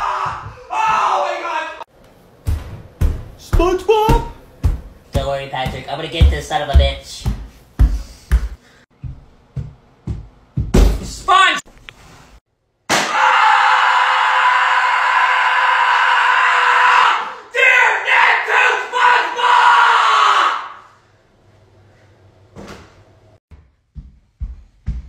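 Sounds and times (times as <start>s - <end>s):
person screaming: 0.0s - 1.8s.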